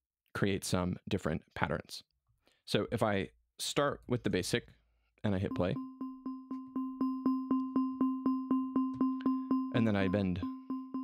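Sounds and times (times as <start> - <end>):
repeated synth note: 5.5 - 11.0.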